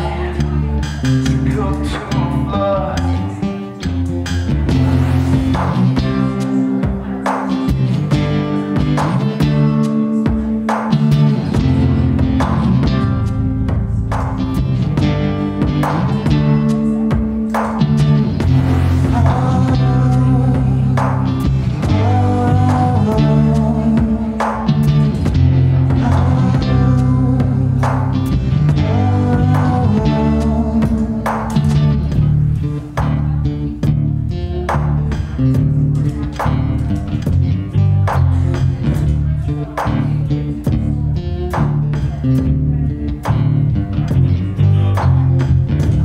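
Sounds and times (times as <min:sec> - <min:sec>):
guitar strumming: 0:00.0 - 0:46.0
sustained low notes: 0:00.0 - 0:46.0.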